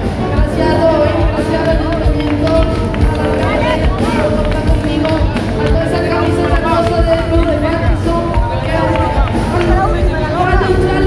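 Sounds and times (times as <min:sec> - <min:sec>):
live band music over a pa: 0:00.0 - 0:11.0
woman's voice on a microphone: 0:00.0 - 0:11.0.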